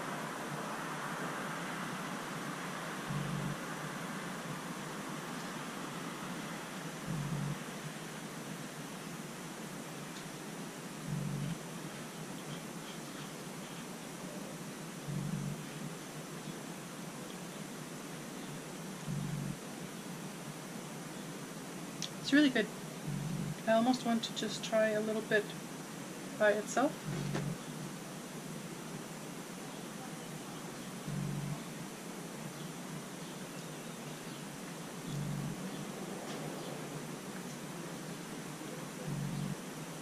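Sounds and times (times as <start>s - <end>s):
faint background hiss: 0.0s - 40.0s
soft low thump: 7.1s - 7.6s, 23.1s - 23.6s, 27.0s - 27.6s.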